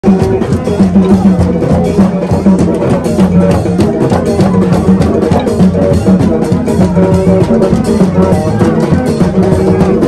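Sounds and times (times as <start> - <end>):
drums and hand percussion: 0.0 - 10.0.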